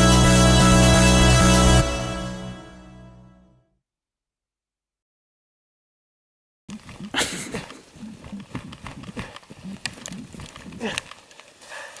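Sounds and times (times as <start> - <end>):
man laughing: 7.1 - 8.4.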